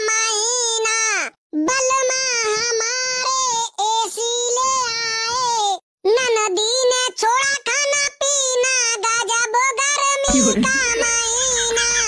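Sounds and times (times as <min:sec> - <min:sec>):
high-pitched voice singing: 0:10.3 - 0:12.0.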